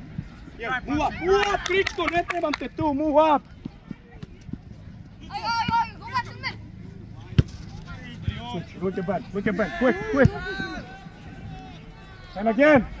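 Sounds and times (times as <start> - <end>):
players shouting: 5.1 - 13.0
soccer ball kick thud: 5.4 - 5.9, 7.3 - 8.5, 10.1 - 10.7.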